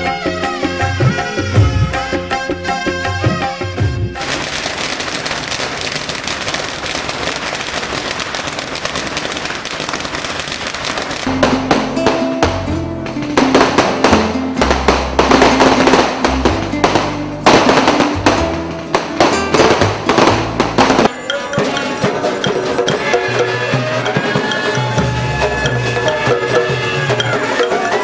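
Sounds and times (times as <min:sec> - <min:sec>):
fireworks banging: 0:00.8 - 0:28.0
firecrackers crackling: 0:03.3 - 0:28.0.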